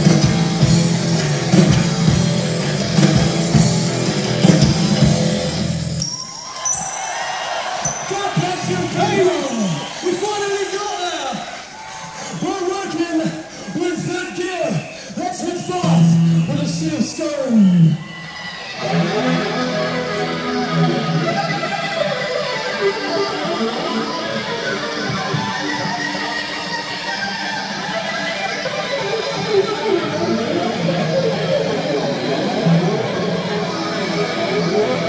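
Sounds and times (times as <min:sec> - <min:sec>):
rock band playing: 0:00.0 - 0:10.8, 0:11.5 - 0:35.0
electric guitars: 0:00.0 - 0:12.5, 0:13.2 - 0:35.0.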